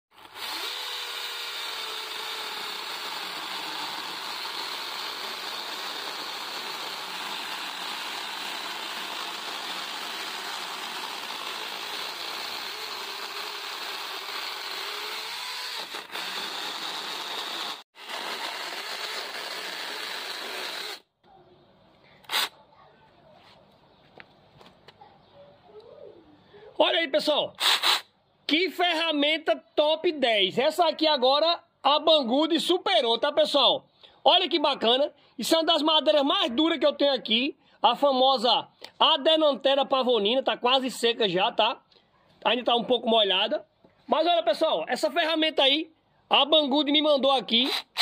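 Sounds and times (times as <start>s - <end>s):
electric chainsaw cutting log: 0.1s - 21.1s, 27.6s - 28.0s, 47.6s - 48.0s.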